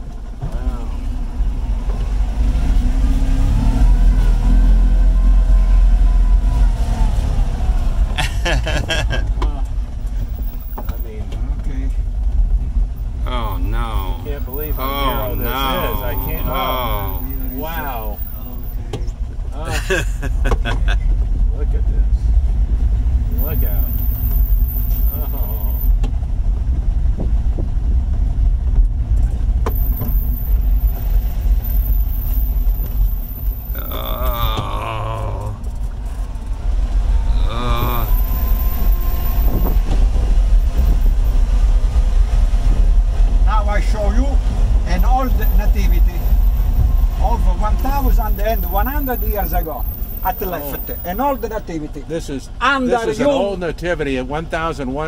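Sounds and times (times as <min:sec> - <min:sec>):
car engine and road noise drone: 0:00.0 - 0:55.0
short wordless voice: 0:33.8 - 0:35.7, 0:37.3 - 0:38.2.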